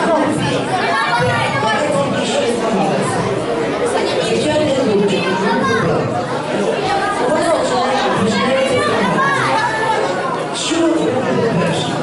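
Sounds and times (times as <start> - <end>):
crowd hubbub in a hall: 0.0 - 12.0.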